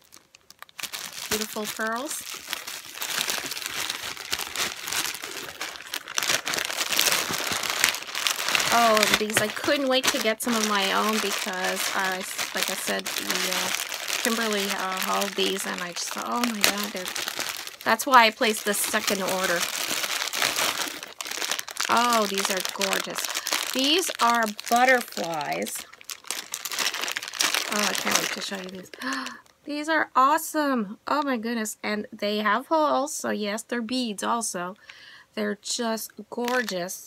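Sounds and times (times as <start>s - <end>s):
plastic bags crinkling: 0.0s - 29.6s, 36.4s - 36.8s.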